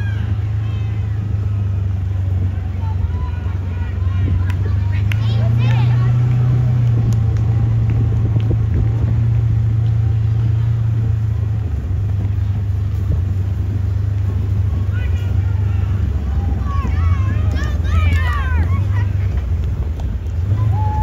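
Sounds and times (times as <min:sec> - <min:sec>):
loud low rumble: 0:00.0 - 0:21.0.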